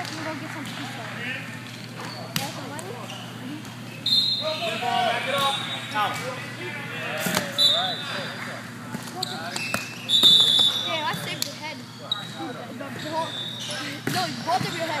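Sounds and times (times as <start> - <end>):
players' voices: 0.0 - 15.0.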